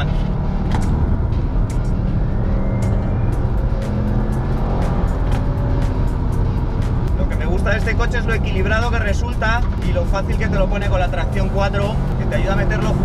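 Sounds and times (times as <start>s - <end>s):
background music: 0.0s - 13.0s
car engine running hard: 0.0s - 13.0s.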